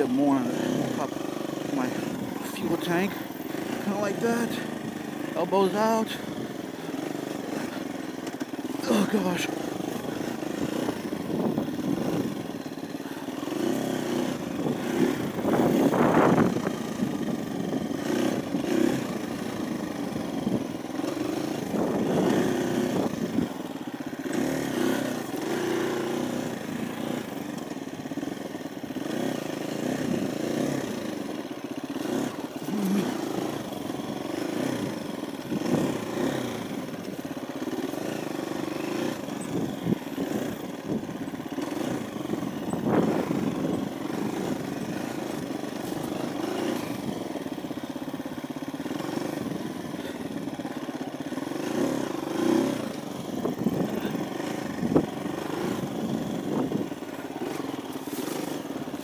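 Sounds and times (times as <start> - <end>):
motorbike engine revving: 0.0 - 59.0.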